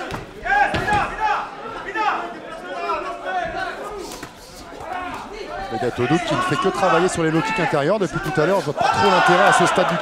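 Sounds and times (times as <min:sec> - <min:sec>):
men talking and calling out: 0:00.0 - 0:10.0.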